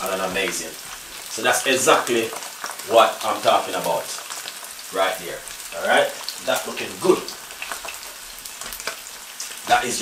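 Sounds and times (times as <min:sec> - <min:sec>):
fish sizzling in a frying pan: 0:00.0 - 0:10.0.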